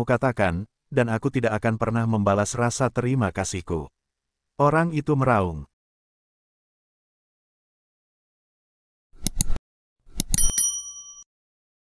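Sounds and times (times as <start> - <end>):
quick clicks: 9.2 - 10.5
bright bell ding: 10.3 - 11.3.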